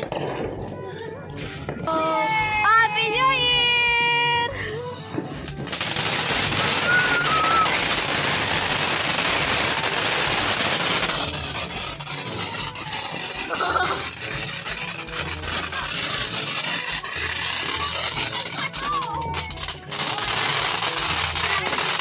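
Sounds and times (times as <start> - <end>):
firework crackling spray: 0.0 - 22.0
firework fountain hissing: 0.0 - 22.0.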